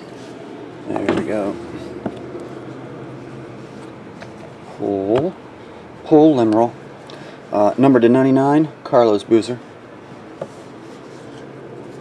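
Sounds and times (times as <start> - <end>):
low room noise: 0.0 - 12.0
cards sliding and rubbing: 10.5 - 12.0.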